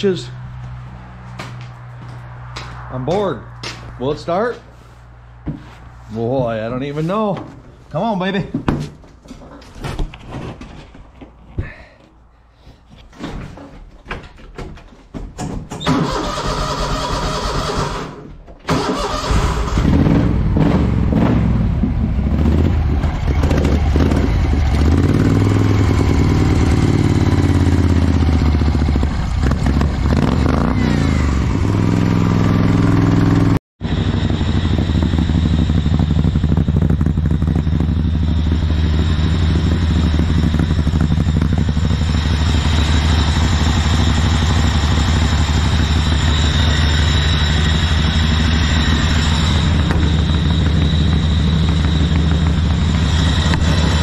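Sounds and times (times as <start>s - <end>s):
small engine revving and idling: 15.9s - 54.0s.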